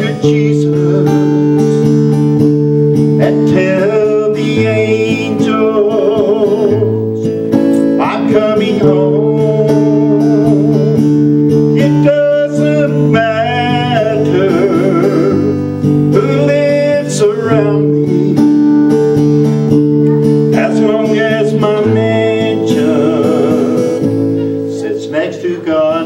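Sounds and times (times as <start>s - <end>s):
acoustic guitar strumming: 0.0s - 26.0s.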